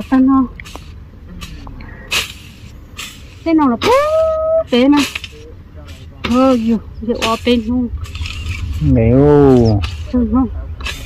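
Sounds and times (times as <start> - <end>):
woman speaking: 0.0 - 0.5, 3.5 - 5.0, 6.3 - 7.9, 10.0 - 10.6
wind rumble on microphone: 6.3 - 11.0.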